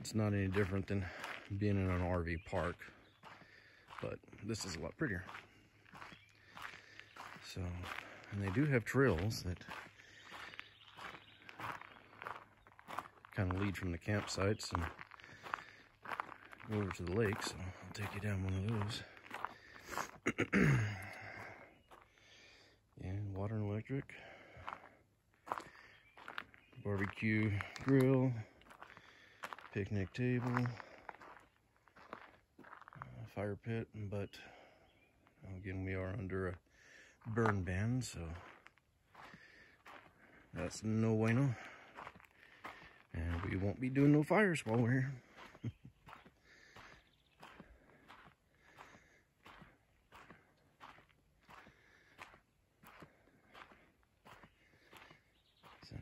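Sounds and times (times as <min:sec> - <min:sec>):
man speaking: 0:00.0 - 0:02.9, 0:04.0 - 0:05.4, 0:07.4 - 0:09.8, 0:13.4 - 0:15.0, 0:16.6 - 0:19.1, 0:23.0 - 0:24.3, 0:26.8 - 0:28.5, 0:29.7 - 0:30.8, 0:33.0 - 0:34.5, 0:35.4 - 0:36.6, 0:37.2 - 0:38.6, 0:40.5 - 0:41.8, 0:43.1 - 0:45.2
footsteps on gravel: 0:00.0 - 0:33.4, 0:34.4 - 0:56.0.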